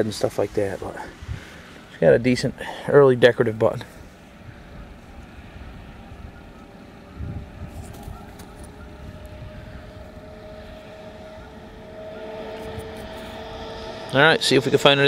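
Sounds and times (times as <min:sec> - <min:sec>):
distant engine drone: 0:00.0 - 0:15.0
faint two-note hum: 0:04.0 - 0:15.0.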